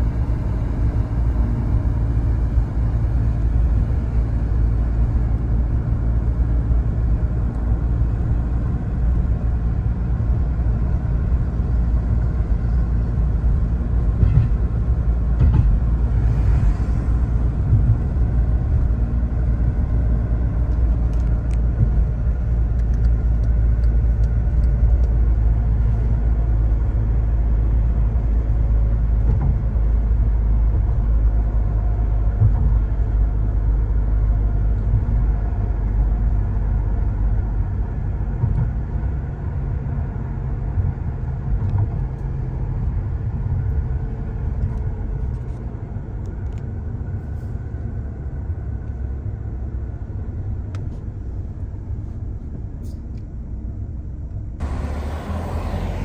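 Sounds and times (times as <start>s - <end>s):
car driving rumble: 0.0s - 56.0s.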